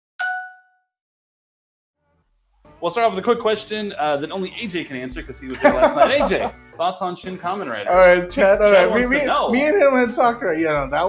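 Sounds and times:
bell-like ding: 0:00.2 - 0:00.9.

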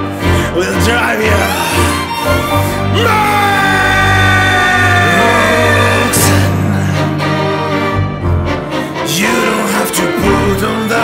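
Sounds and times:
rock-metal tango band with strings: 0:00.0 - 0:11.0.

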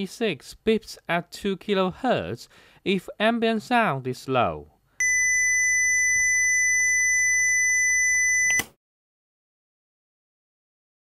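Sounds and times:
high steady beep tone: 0:05.0 - 0:08.7
sharp click: 0:08.5 - 0:08.8.

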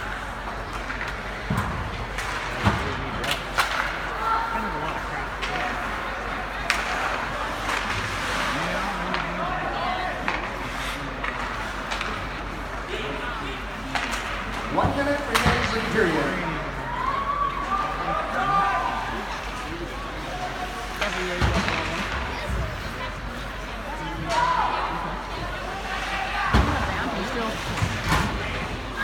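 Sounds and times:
hockey sticks and puck clacking: 0:00.0 - 0:16.4, 0:18.8 - 0:29.0
spectators and players calling: 0:14.4 - 0:29.0.

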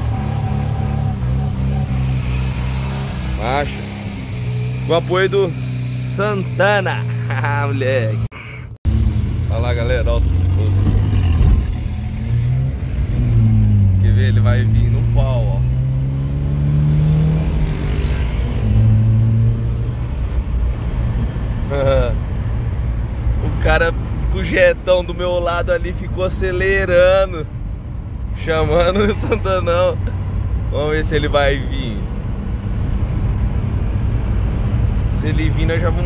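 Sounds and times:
car engine revving: 0:00.0 - 0:24.3.

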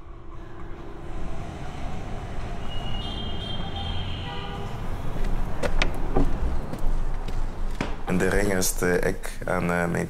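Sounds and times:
high squeal: 0:00.0 - 0:05.2
city traffic rumble: 0:00.0 - 0:10.0.

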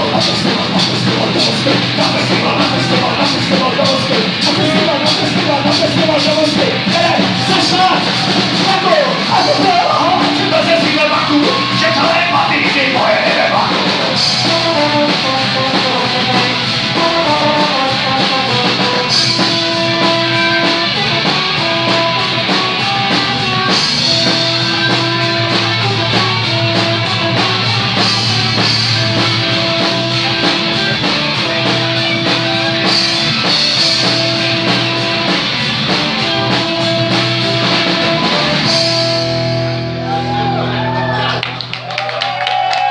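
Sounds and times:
live rock band playing: 0:00.0 - 0:42.9.

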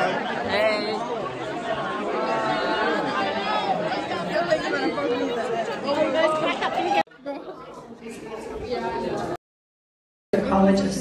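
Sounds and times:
crowd chattering: 0:00.0 - 0:09.4.

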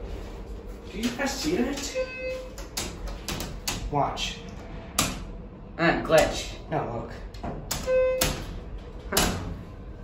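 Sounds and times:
elevator button beep: 0:01.8 - 0:02.6, 0:07.7 - 0:08.5.

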